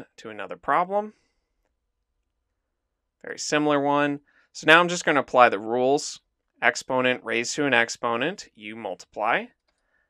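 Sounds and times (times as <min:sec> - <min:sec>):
spoken word: 0:00.0 - 0:01.1, 0:03.3 - 0:09.5.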